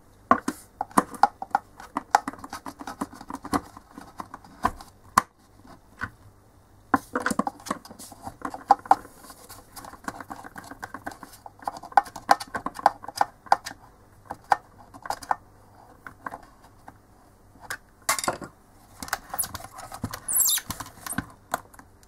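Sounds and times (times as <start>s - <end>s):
rustling scrape: 9.0s - 9.9s
brief high rasp: 20.3s - 20.7s.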